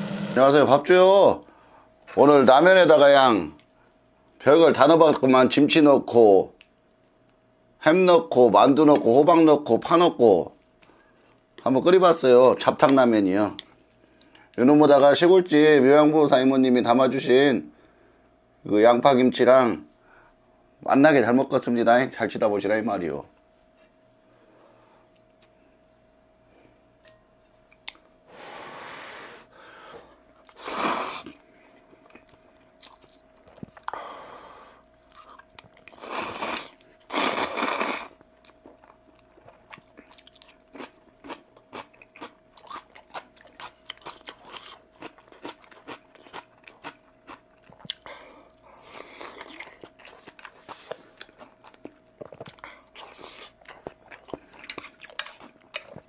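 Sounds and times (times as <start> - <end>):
faint steady hum: 0.0 - 56.0
person slurping noodles: 30.6 - 31.4, 36.0 - 38.1
wet chewing and crunching: 31.2 - 34.0, 35.0 - 56.0.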